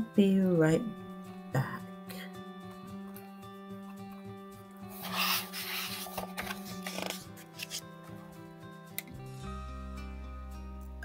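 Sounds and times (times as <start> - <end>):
soft background music: 0.0 - 11.0
book page turning: 4.9 - 7.9.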